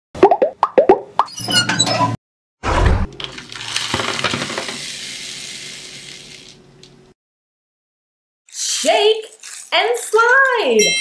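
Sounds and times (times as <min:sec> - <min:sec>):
twinkling chime: 0:10.8 - 0:11.0.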